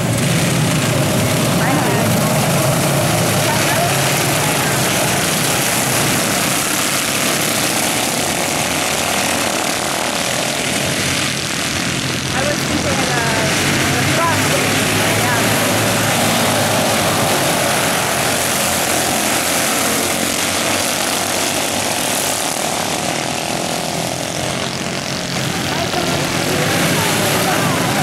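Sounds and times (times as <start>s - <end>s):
race car engines: 0.0s - 28.0s.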